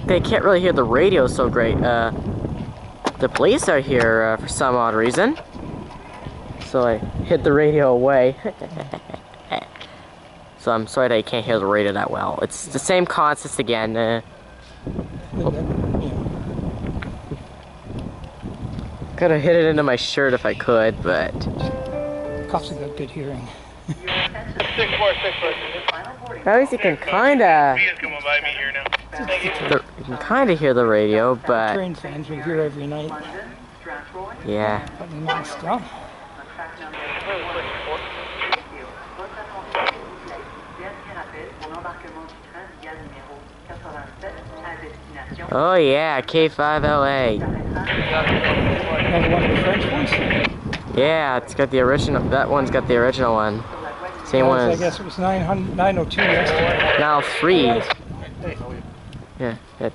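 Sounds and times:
wind buffeting microphone: 0.0 - 4.6, 5.4 - 7.8, 14.8 - 19.4, 20.9 - 21.8, 46.7 - 53.8, 54.7 - 57.0, 57.8 - 59.4
scanner radio chatter: 23.9 - 29.8, 36.4 - 40.1, 47.9 - 50.5, 56.2 - 58.0.

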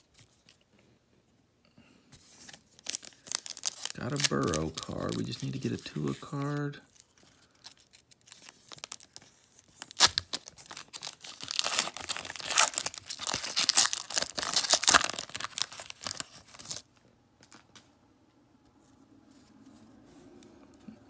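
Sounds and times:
foil wrapper tearing and crinkling: 2.4 - 17.6.

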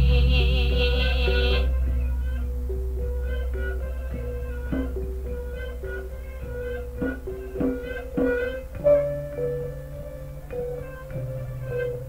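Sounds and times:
deep gong ringing: 0.0 - 11.4
pitched instrument notes: 0.0 - 12.0.

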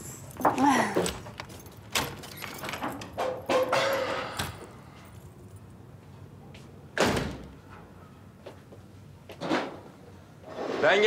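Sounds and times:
clinks of plates and tableware: 3.1 - 4.6
front door thud: 7.0 - 7.6.

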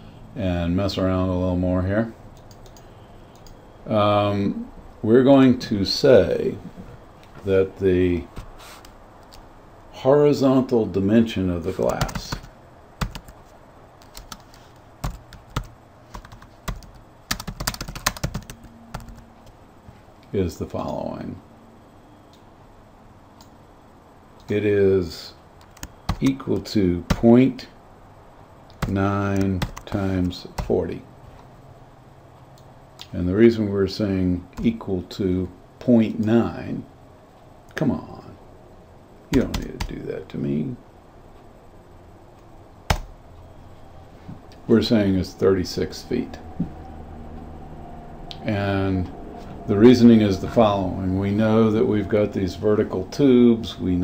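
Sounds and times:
faint room hum: 0.0 - 54.0
typing on computer keyboard: 11.8 - 13.4, 14.0 - 19.2, 28.7 - 30.0.

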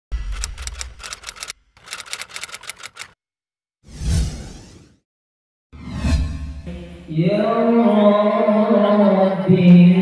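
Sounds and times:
typewriter keystroke clicks: 0.3 - 3.2
whoosh: 5.8 - 7.1.

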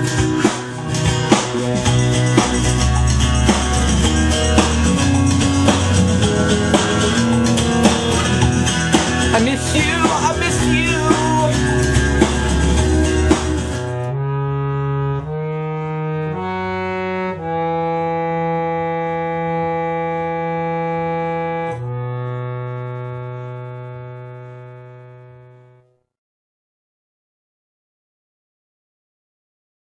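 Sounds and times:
loud rock music: 0.0 - 14.2
keyboard chords: 0.0 - 25.8.

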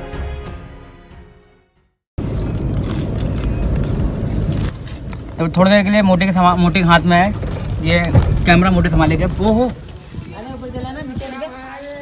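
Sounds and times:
car engine and road noise: 2.2 - 12.0.

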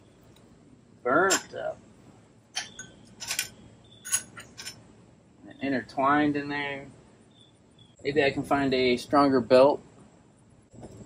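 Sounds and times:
hand tool clinking on metal: 1.3 - 1.6, 2.6 - 4.8.

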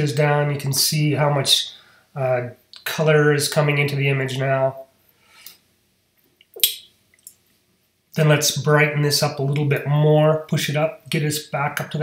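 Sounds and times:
wet mouth click: 6.4 - 7.4.

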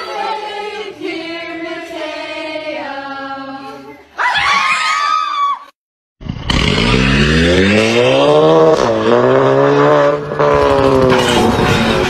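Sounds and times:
engine revving hard: 6.3 - 12.0.

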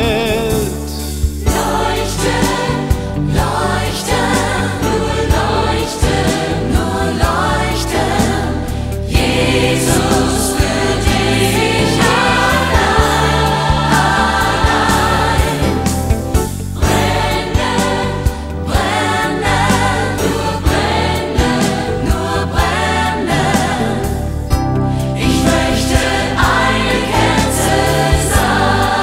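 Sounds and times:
band with steady beat and bass: 0.0 - 29.0
choir singing: 0.0 - 29.0.

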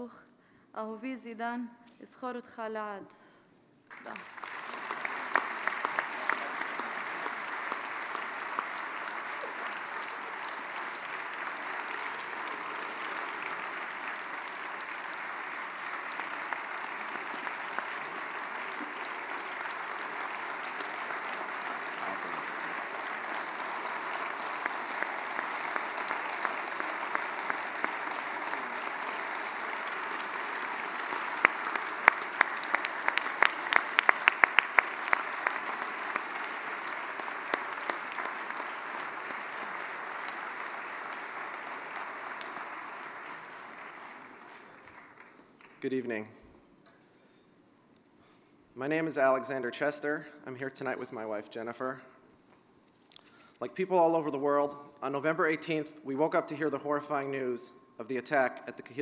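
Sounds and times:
loud close individual claps: 3.9 - 45.8
audience applauding: 3.9 - 46.3.

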